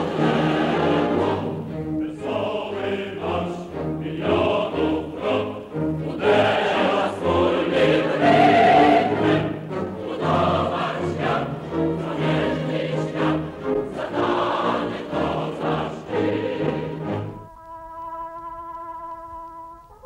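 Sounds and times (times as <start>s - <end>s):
choir singing: 0.0s - 17.5s.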